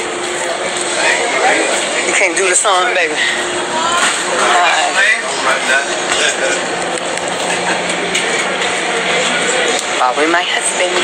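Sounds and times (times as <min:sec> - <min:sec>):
background voices and chatter: 0:00.0 - 0:11.0.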